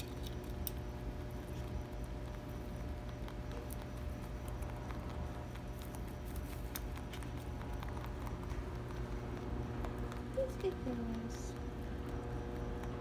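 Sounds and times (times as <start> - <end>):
rabbits chewing hay: 0.0 - 13.0
steady low hum: 0.0 - 13.0.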